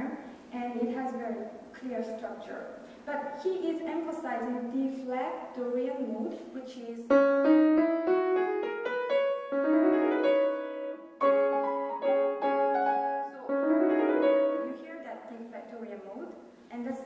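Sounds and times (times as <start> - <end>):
grand piano playing: 7.1 - 14.9.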